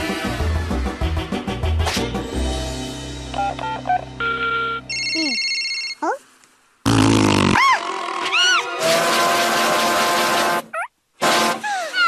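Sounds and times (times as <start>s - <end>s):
electronic phone beeps: 3.4s - 6.0s.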